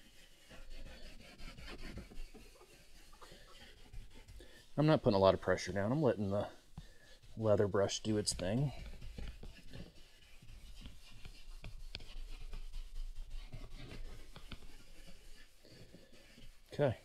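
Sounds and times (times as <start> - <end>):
brush scrubbing leather seat: 0.0 - 17.0.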